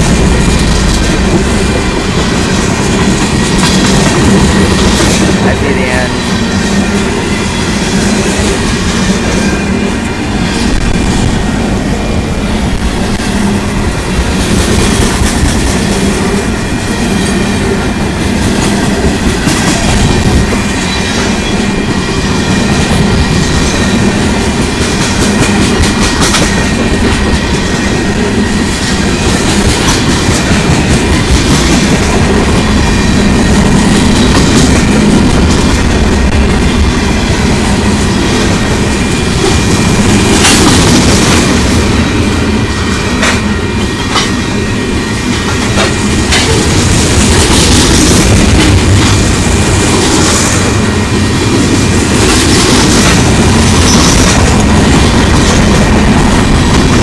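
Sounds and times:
freight train rumbling past: 0.0s - 57.0s.

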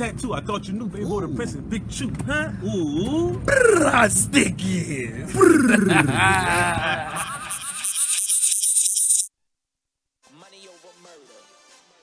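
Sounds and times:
fast high rattle: 7.4s - 9.3s.

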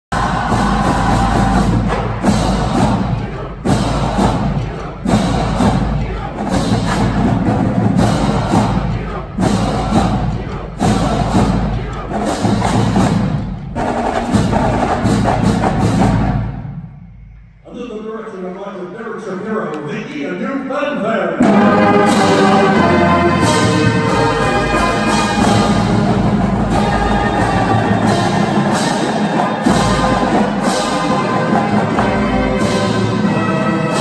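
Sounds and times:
marching band playing: 0.1s - 17.3s, 21.4s - 34.0s.

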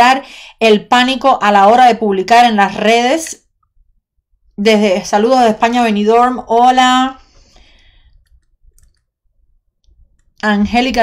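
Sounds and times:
faint clicks: 8.1s - 9.1s.

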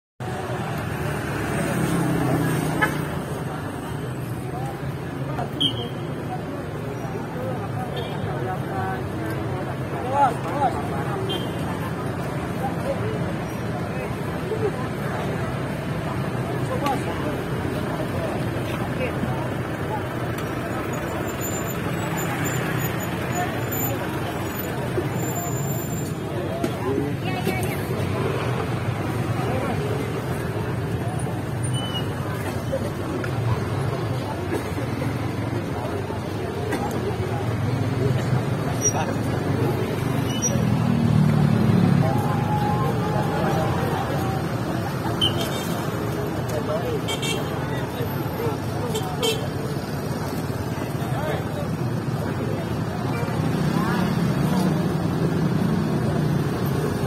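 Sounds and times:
crowd chatter: 0.2s - 57.0s
motor traffic: 0.2s - 57.0s
people's voices: 0.2s - 57.0s.

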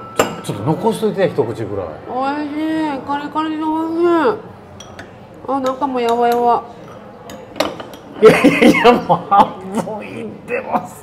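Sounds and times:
spoon clinking on ceramic bowl: 0.0s - 0.5s, 4.8s - 8.1s.

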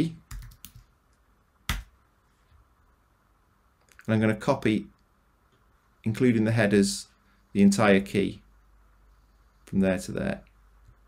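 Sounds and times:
keyboard typing: 0.3s - 0.9s.

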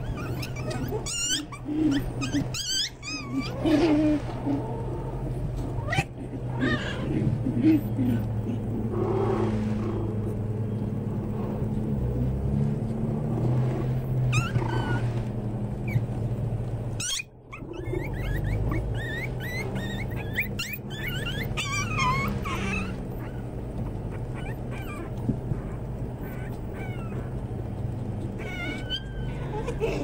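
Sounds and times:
puppies yipping and whimpering: 0.0s - 11.3s, 14.0s - 15.2s, 15.8s - 16.2s, 17.0s - 30.0s
steady low hum: 0.0s - 30.0s.

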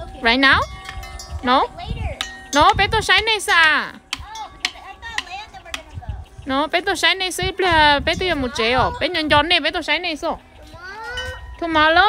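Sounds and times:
stick knocking metal wind chime: 0.2s - 6.0s.

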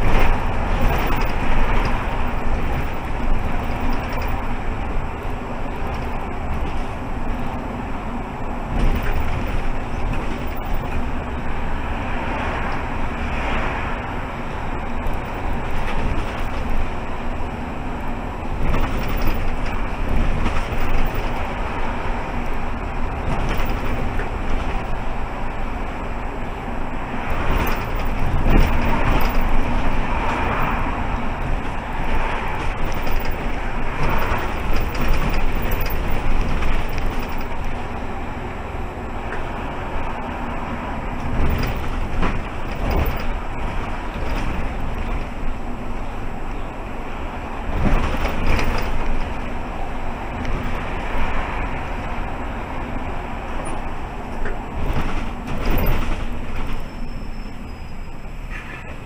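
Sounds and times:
knocks and rattles: 0.0s - 7.6s, 8.7s - 11.3s, 14.8s - 17.2s, 18.5s - 25.0s, 27.2s - 38.0s, 41.2s - 45.5s, 47.7s - 49.6s, 54.4s - 57.0s
bus engine and road noise: 0.0s - 59.0s.

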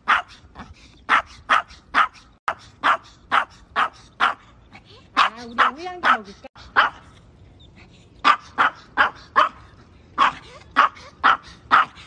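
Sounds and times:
small dog yapping: 0.0s - 0.4s, 1.1s - 4.4s, 5.2s - 7.1s, 8.2s - 12.0s.

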